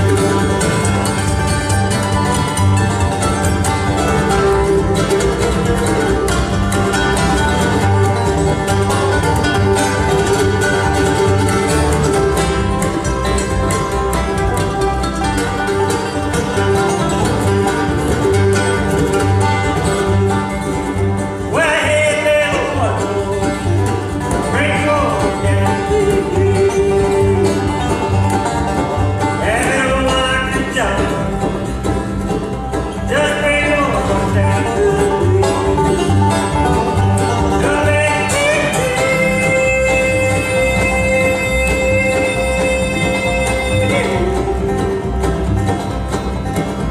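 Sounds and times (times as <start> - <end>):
banjo picking: 0.0 - 46.9
bluegrass band playing: 0.0 - 46.9
upright bass: 0.0 - 46.9.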